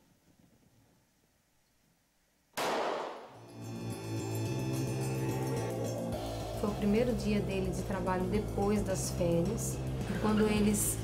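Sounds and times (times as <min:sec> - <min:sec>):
loud impact hit: 0:02.6 - 0:03.4
music with deep bass note: 0:03.4 - 0:11.0.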